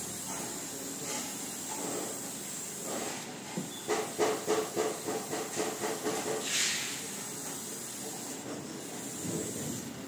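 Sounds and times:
spray gun hissing: 0:00.0 - 0:10.0.

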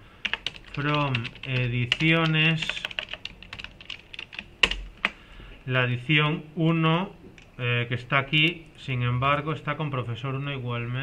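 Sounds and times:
computer keyboard typing: 0:00.2 - 0:05.2.

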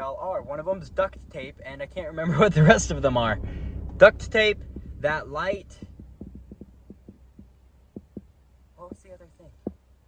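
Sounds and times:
faint vehicle cabin hum: 0:00.0 - 0:10.0
soft thumps: 0:04.6 - 0:09.9.

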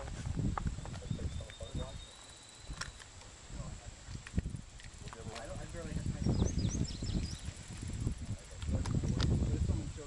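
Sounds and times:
low rumbling microphone noise: 0:00.0 - 0:10.0
high bird chirps: 0:00.8 - 0:03.1, 0:06.2 - 0:07.6.

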